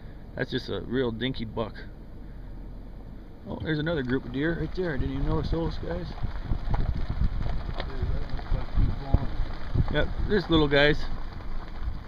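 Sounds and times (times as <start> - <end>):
wind buffeting microphone: 3.9 - 12.0.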